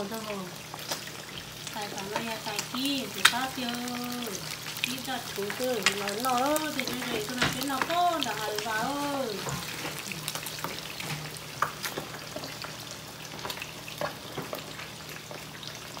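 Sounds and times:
fish sizzling in oil: 0:00.0 - 0:16.0
person speaking: 0:01.8 - 0:10.2.

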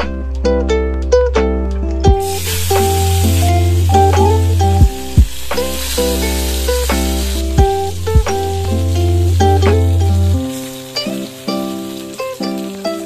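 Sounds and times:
plucked-string music: 0:00.0 - 0:13.0
fish frying in hot oil: 0:02.2 - 0:13.0.

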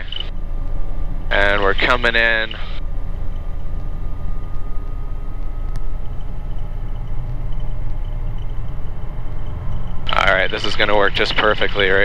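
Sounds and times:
faint steady whining tones: 0:00.0 - 0:12.0
helicopter rotor drone: 0:00.0 - 0:12.0.

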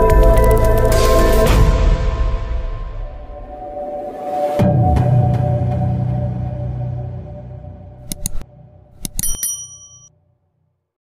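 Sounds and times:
quick clicks: 0:08.0 - 0:08.4
bright bell ding: 0:09.0 - 0:10.1.

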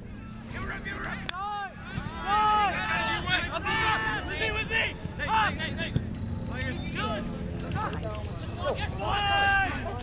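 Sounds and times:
distant shouting voices: 0:00.0 - 0:10.0.

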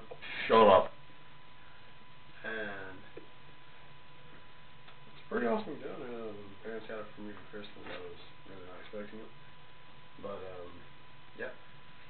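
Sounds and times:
faint steady high hum: 0:00.0 - 0:12.0.

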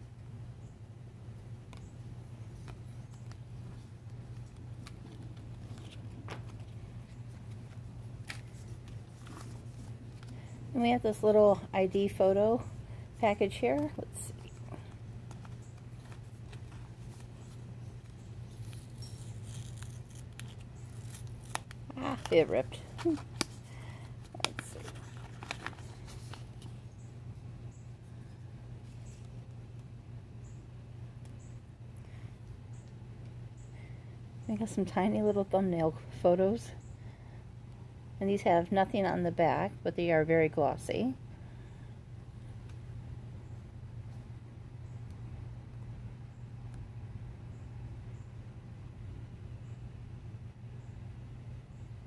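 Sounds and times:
low steady hum: 0:00.0 - 0:52.0
paper envelope rustling: 0:02.5 - 0:10.4, 0:13.8 - 0:26.9
woman speaking: 0:10.7 - 0:14.9, 0:21.9 - 0:23.2, 0:34.5 - 0:36.8, 0:38.2 - 0:41.2.

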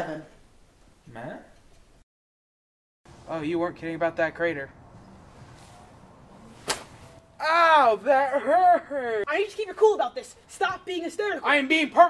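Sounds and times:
short sharp crack: 0:06.6 - 0:07.2.

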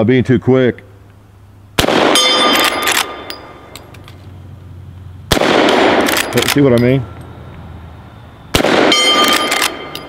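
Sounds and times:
rifle shot: 0:01.8 - 0:03.3, 0:05.3 - 0:06.7, 0:08.5 - 0:10.0
steel target ringing: 0:01.9 - 0:03.9, 0:05.9 - 0:07.3, 0:08.5 - 0:10.0.

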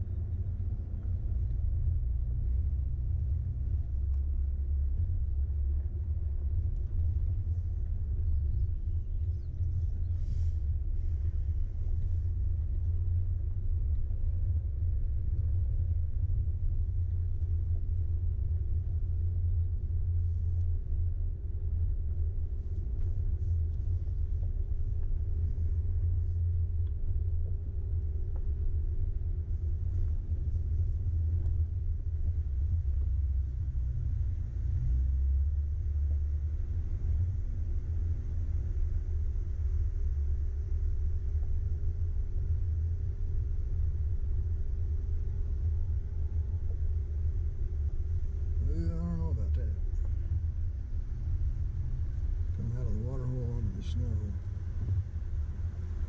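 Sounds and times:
off-road vehicle engine rumble: 0:00.0 - 0:56.0.

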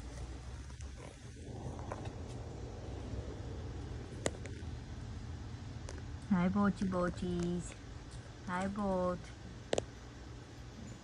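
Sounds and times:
steady low rumble: 0:00.0 - 0:11.0.

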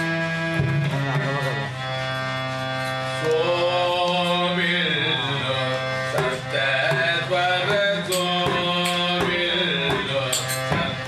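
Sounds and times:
harmonium sustained notes: 0:00.0 - 0:11.0
man singing slow melody: 0:03.2 - 0:11.0.

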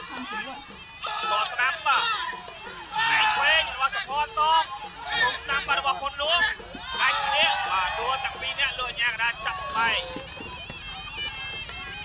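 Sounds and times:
drums: 0:00.0 - 0:12.0.

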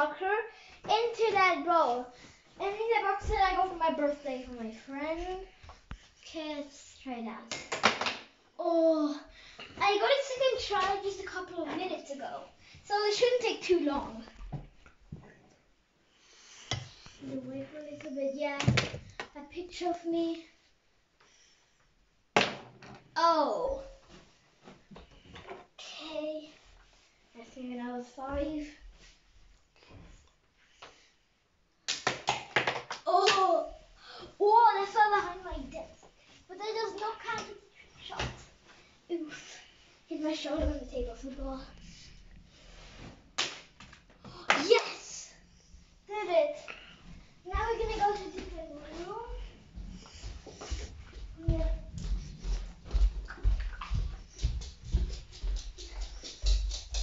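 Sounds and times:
footsteps on wooden floor: 0:47.4 - 0:57.0.

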